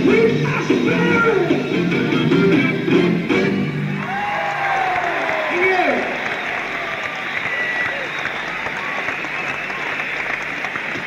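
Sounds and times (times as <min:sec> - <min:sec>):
crowd cheering and applauding: 0:03.8 - 0:11.0
people shouting: 0:04.0 - 0:08.1
faint whistle: 0:06.2 - 0:10.4.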